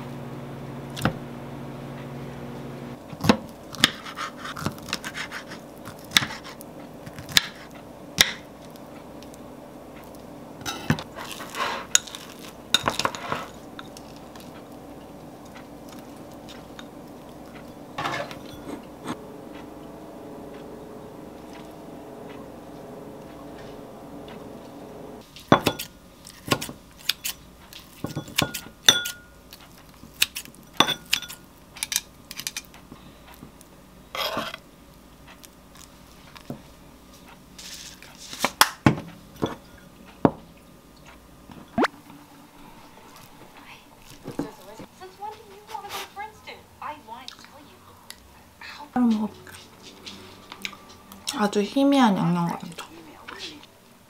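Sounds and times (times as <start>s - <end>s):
microwave oven humming: 0.0s - 37.6s
knife cutting on wooden board: 3.2s - 7.7s
dishes and utensils clinking: 10.6s - 19.2s, 25.5s - 25.9s, 28.0s - 29.4s, 30.7s - 32.7s, 39.4s - 40.4s.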